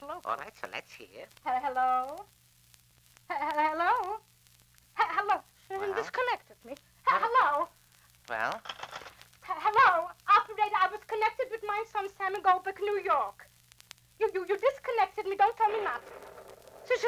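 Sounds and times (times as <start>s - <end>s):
faint low hum: 0.0s - 17.0s
person speaking: 5.7s - 7.4s, 15.2s - 16.2s, 16.8s - 17.0s.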